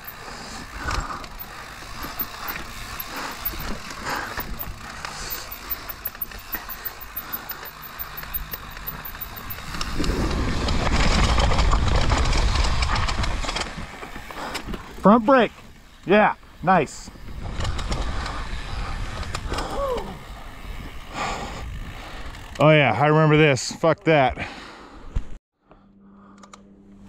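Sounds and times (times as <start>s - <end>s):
bike chain and frame rattling: 0.0s - 10.0s
bike tyres rolling over dirt and rock: 9.6s - 16.0s.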